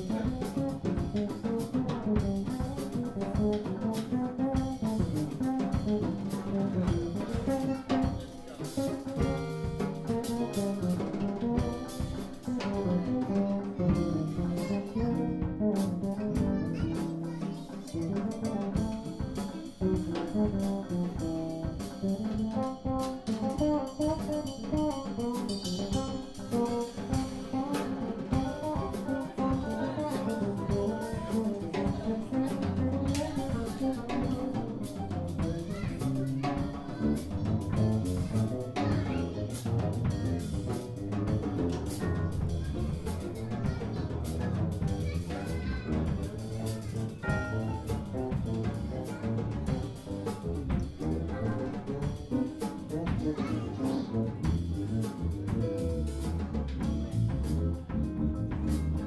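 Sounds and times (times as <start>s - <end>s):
jazz combo playing: 0.0s - 59.0s
saxophone melody: 20.0s - 26.1s, 47.2s - 48.6s.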